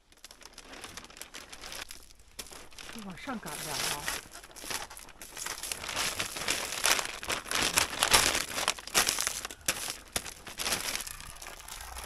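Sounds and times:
plastic film crinkling: 0.0 - 12.0.

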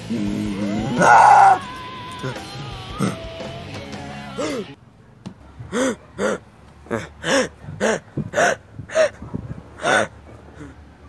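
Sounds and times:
person making high-pitched vocal sounds: 0.0 - 3.4, 4.4 - 4.8, 5.7 - 9.2, 9.8 - 10.8.

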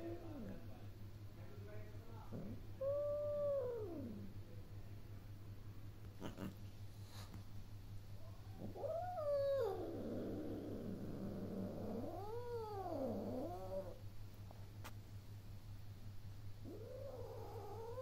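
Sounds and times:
cat yowling: 2.8 - 4.3, 8.5 - 10.2, 11.7 - 14.0, 16.6 - 18.0.

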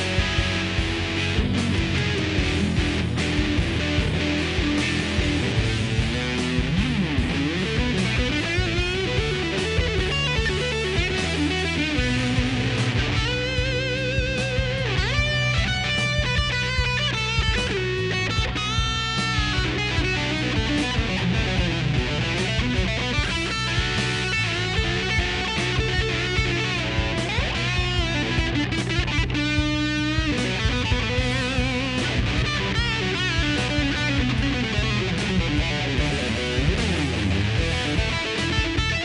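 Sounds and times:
distorted electric guitar lead: 0.0 - 39.0.

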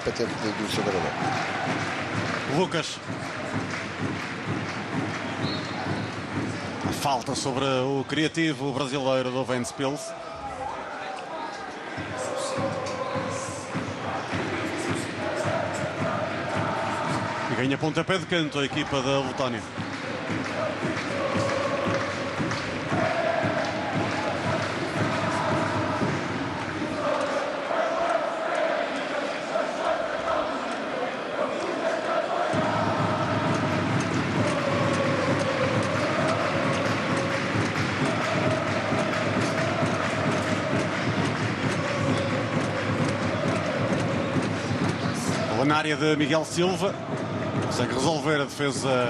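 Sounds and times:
stadium crowd chanting: 0.0 - 49.0.

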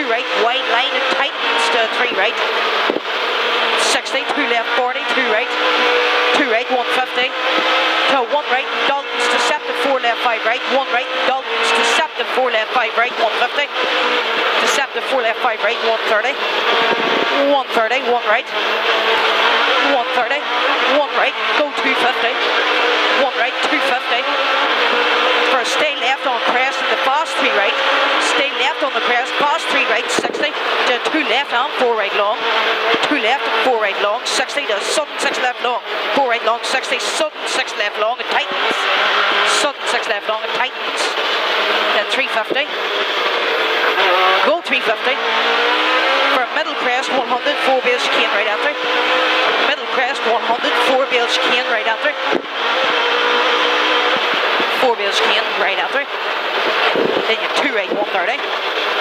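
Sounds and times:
car engine revving at full throttle: 0.0 - 59.0.

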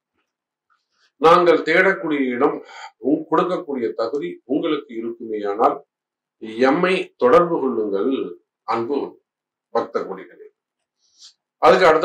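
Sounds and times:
man talking: 1.2 - 5.8, 6.4 - 9.2, 9.8 - 10.5, 11.6 - 12.0.

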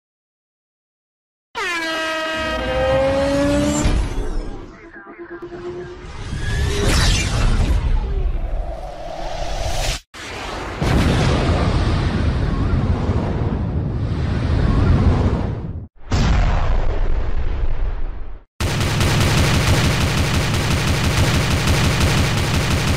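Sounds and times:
whooshing sound effect: 3.8 - 10.9
rumbling explosion blasts: 10.2 - 18.5
automatic gunfire burst: 18.6 - 22.9.

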